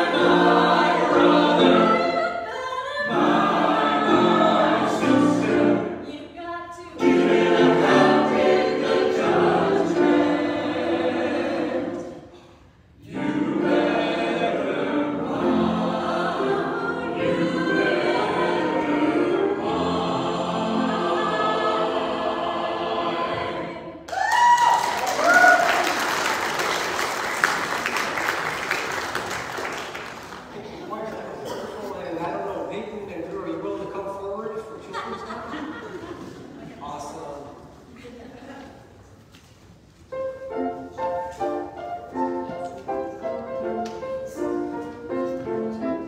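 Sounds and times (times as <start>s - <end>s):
piano accompaniment: 0.0s - 2.4s, 3.0s - 6.1s, 7.0s - 12.3s, 13.0s - 23.7s, 40.0s - 46.0s
choir singing: 0.0s - 24.1s
applause with cheers: 24.1s - 30.5s.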